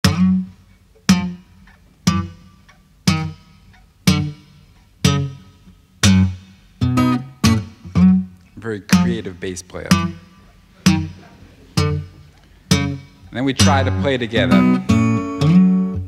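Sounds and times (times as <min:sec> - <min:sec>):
acoustic guitar bass notes: 0:00.0 - 0:16.0.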